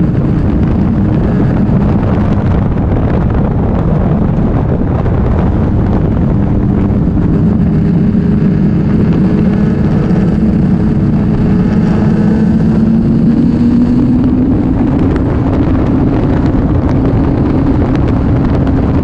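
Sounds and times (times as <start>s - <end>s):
motorcycle engine revving: 0.0s - 19.0s
wind on microphone: 0.0s - 19.0s.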